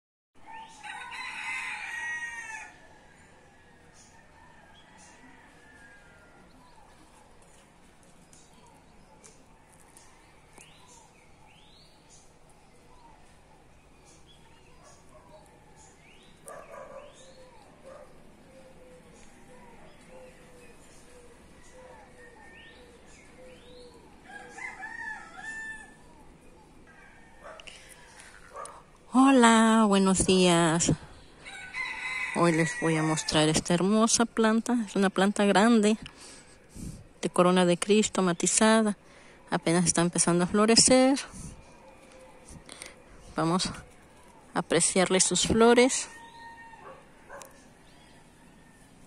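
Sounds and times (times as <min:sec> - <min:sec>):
rooster crowing: 0:00.4 - 0:06.5, 0:24.2 - 0:26.2, 0:31.4 - 0:33.5, 0:46.1 - 0:49.0
faint bird sounds: 0:00.4 - 0:29.1, 0:33.0 - 0:49.0.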